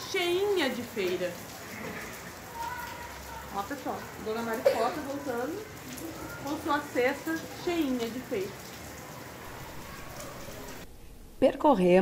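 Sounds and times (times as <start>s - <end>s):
steady rain falling: 0.0s - 11.4s.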